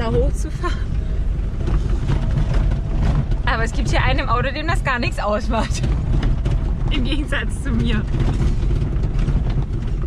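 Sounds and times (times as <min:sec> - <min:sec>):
car engine rumbling: 0:00.0 - 0:10.0
tyres on loose gravel: 0:01.0 - 0:10.0.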